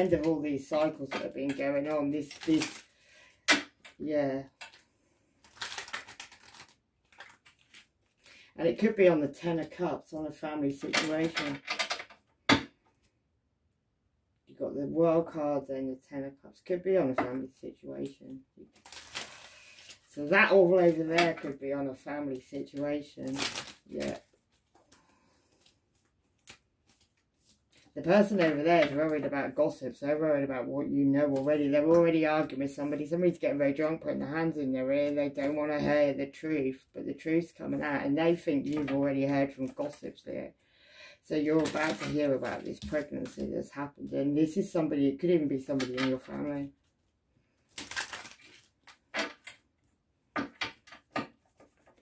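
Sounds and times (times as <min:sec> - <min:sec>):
cards snapping and rustling: 0:05.4 - 0:07.9, 0:47.7 - 0:49.6
cards being handled: 0:23.3 - 0:27.7.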